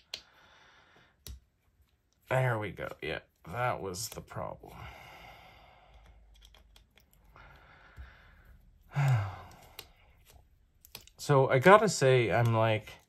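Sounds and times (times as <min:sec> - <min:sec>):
man sighing: 0:07.4 - 0:10.1.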